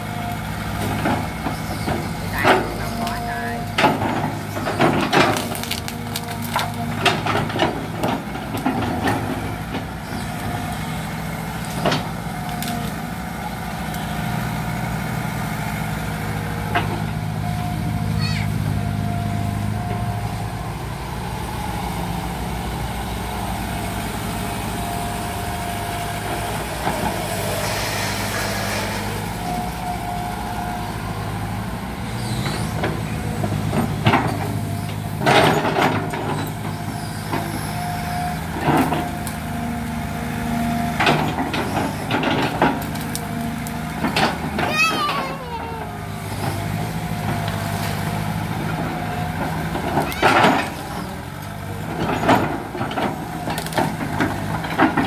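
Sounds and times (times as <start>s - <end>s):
excavator running: 0.0s - 55.0s
hydraulic whine: 25.3s - 35.4s.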